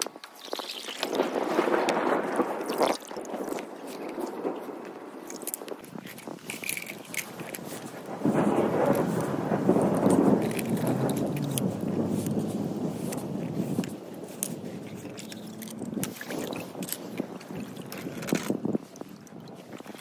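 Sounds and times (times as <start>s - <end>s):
rushing rumble: 1.0s - 20.0s
toy cars clicking and rattling: 5.4s - 7.6s.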